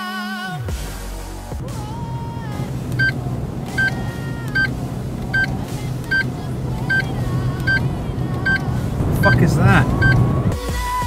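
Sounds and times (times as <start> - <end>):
car engine drone: 0.9 - 10.7
road noise: 1.3 - 10.6.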